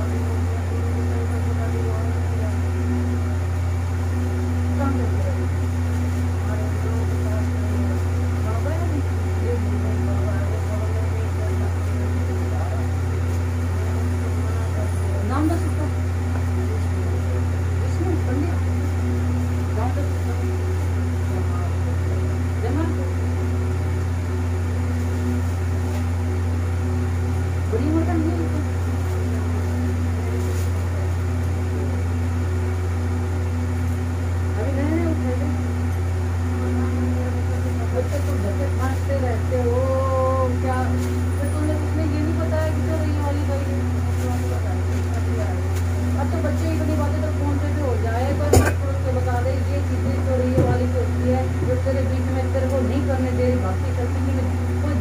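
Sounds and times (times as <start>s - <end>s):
quiet murmured voices: 0.0s - 55.0s
steady low hum: 0.0s - 55.0s.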